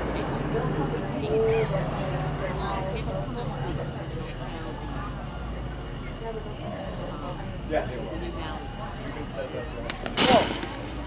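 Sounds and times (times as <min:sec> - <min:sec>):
baseball smacking into mitt: 0:09.9 - 0:10.8.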